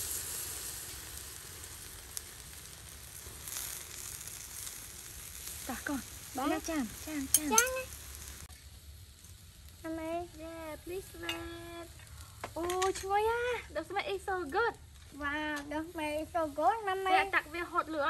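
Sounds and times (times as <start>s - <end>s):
shellfish sizzling on a grill: 0.0s - 18.0s
woman talking: 5.6s - 7.9s, 9.9s - 11.9s, 12.6s - 18.0s.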